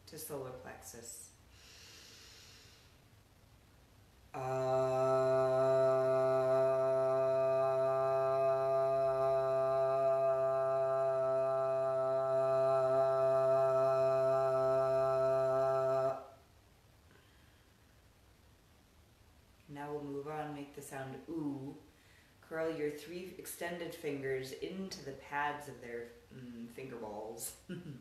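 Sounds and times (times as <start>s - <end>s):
soft inhale: 1.5s - 3.1s, 17.1s - 18.0s, 21.8s - 22.4s
woman chanting long ah: 4.4s - 16.3s, 19.7s - 21.8s.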